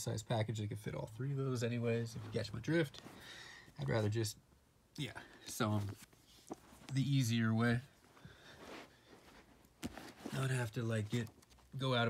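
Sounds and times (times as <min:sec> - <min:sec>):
faint breath: 0:03.0 - 0:03.8, 0:08.1 - 0:09.4.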